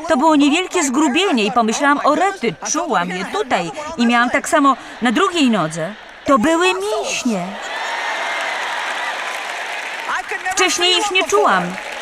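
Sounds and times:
audience applauding: 4.6 - 12.0.

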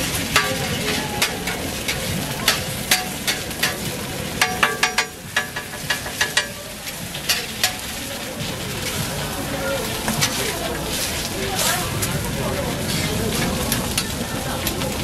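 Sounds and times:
metal spatula scraping griddle: 0.0 - 14.8
food sizzling on a griddle: 0.0 - 15.0
ringing taps: 2.5 - 6.6.

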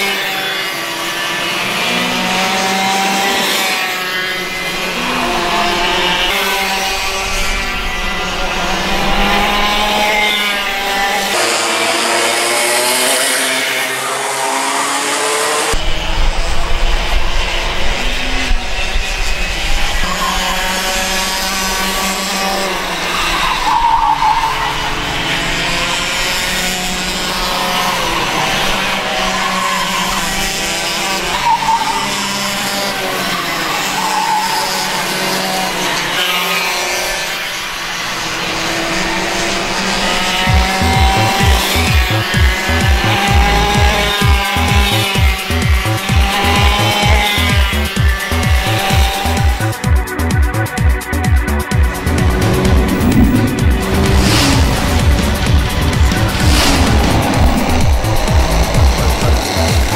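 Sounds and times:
kart engines racing past: 0.0 - 59.9
music with steady beat: 40.5 - 59.9.

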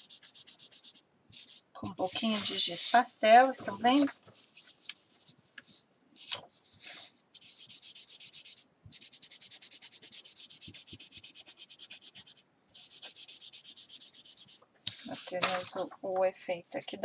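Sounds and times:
pastel rubbing on paper: 0.0 - 15.8.

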